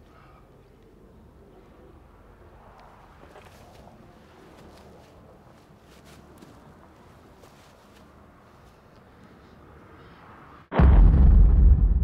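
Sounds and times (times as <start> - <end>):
loud deep blast of noise: 10.7 - 12.0.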